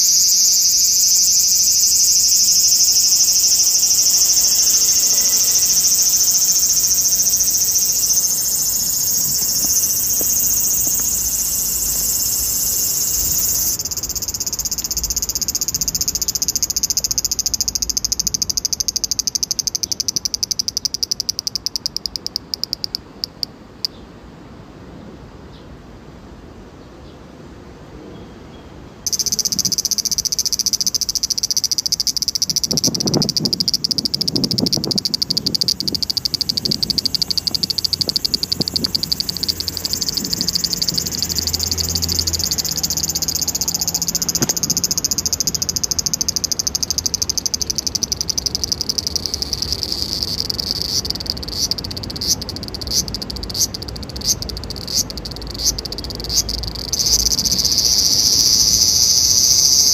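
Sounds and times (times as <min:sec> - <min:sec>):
insects trilling: 0:00.0 - 0:24.0, 0:29.1 - 0:59.9.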